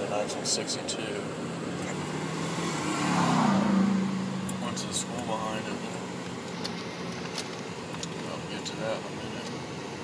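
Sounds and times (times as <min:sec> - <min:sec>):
car engine hum and road noise: 0:00.0 - 0:10.0.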